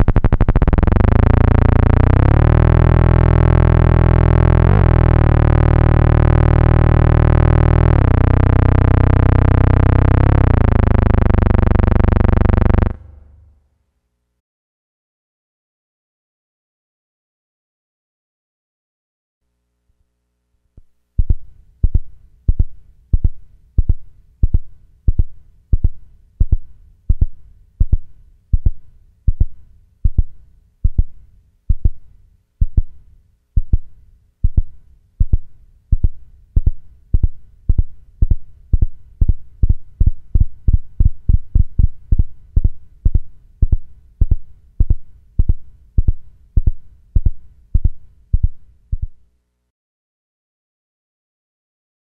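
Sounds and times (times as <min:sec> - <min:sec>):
synthesizer pulsing thump: 0:00.0 - 0:13.6, 0:21.2 - 0:32.0, 0:33.6 - 0:49.2.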